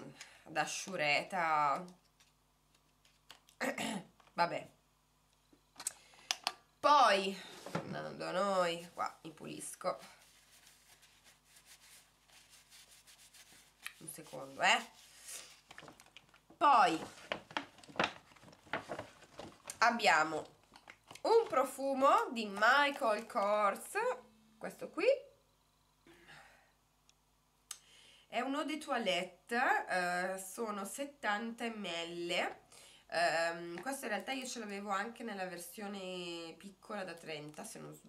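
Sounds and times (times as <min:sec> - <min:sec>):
faint rustling of wrapped box: 0:07.2 - 0:24.0
tissue rubbing lips: 0:10.0 - 0:16.0.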